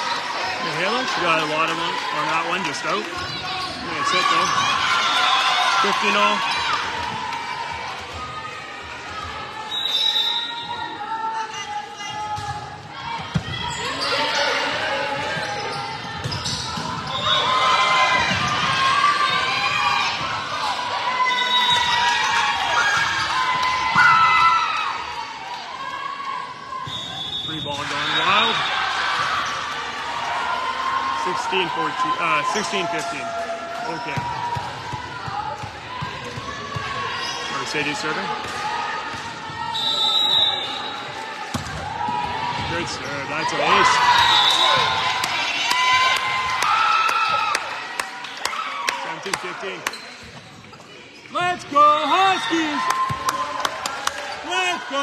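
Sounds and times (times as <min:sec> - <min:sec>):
people calling out in a gym: 0:00.0 - 0:50.2, 0:51.1 - 0:55.0.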